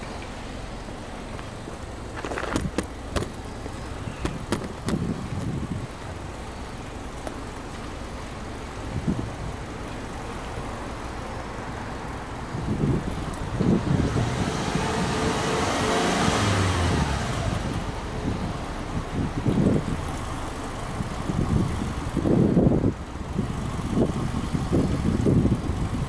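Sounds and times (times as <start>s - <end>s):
car engine idling: 0.0s - 14.4s, 16.4s - 26.0s.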